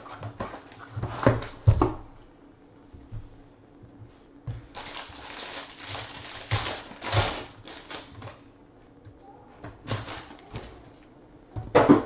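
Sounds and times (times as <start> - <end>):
foil wrapper tearing and crinkling: 4.7 - 8.3, 9.9 - 10.5.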